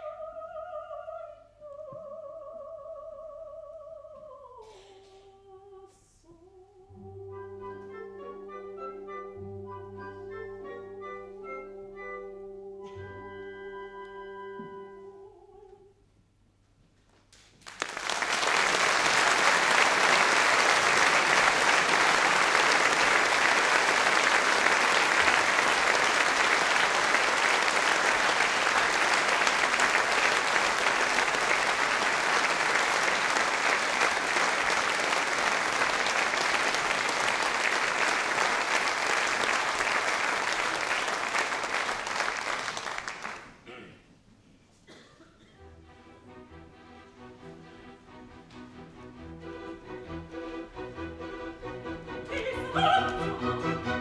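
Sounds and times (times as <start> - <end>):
audience applauding: 17.4 - 43.6.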